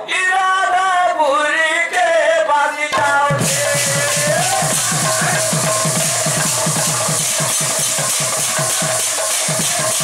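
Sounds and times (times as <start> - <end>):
barrel drum bass strokes: 3.0 - 10.0.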